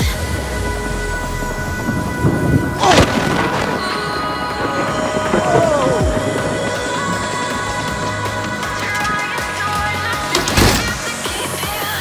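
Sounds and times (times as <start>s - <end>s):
background music: 0.0s - 12.0s
thunder rumbling: 0.8s - 10.1s
loud sharp thunder burst: 1.8s - 8.2s.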